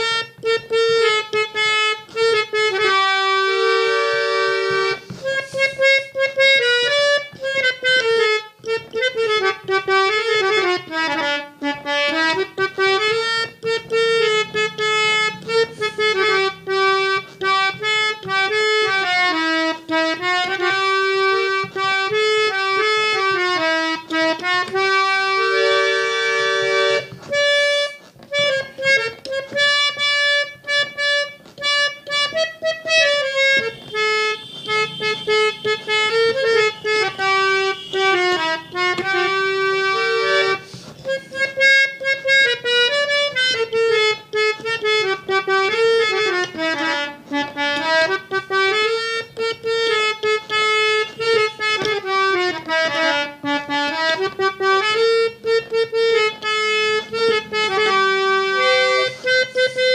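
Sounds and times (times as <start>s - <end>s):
harmonium melody: 0.0s - 59.9s.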